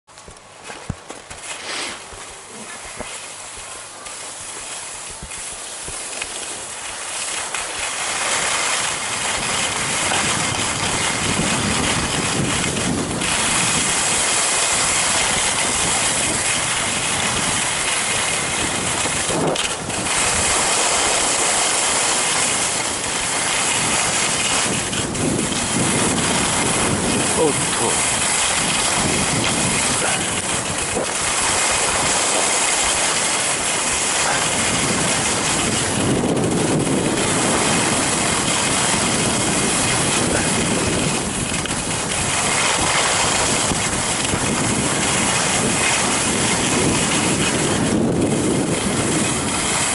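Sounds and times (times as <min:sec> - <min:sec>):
skis scraping over snow: 0:00.1 - 0:49.9
wind rushing over microphone: 0:00.9 - 0:49.9.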